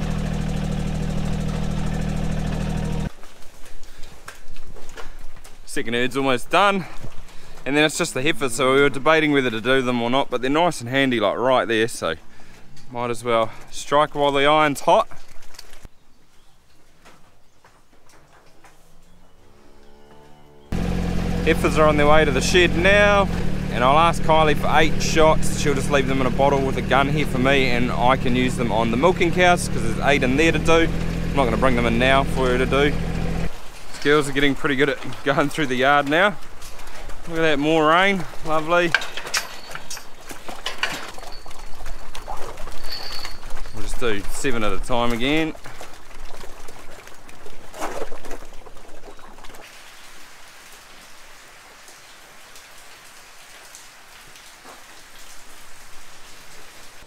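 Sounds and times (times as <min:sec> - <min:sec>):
vehicle engine running: 0:00.0 - 0:03.1, 0:20.7 - 0:33.5
cow hooves clicking and knocking: 0:00.0 - 0:09.9, 0:16.6 - 0:19.4, 0:20.1 - 0:49.7
cow mooing: 0:18.8 - 0:20.8.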